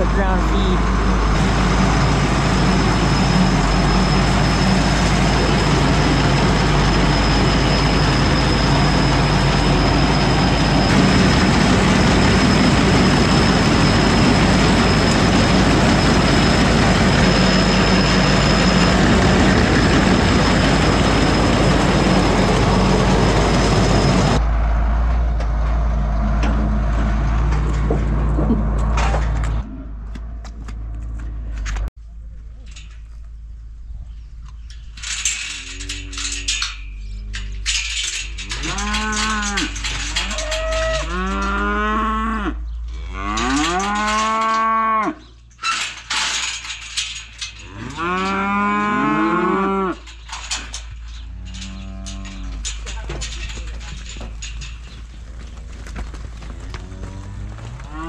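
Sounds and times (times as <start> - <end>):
feed auger running: 0.0 - 24.4
cattle mooing: 38.5 - 45.2, 47.6 - 50.0, 51.4 - 52.7, 56.5 - 58.0.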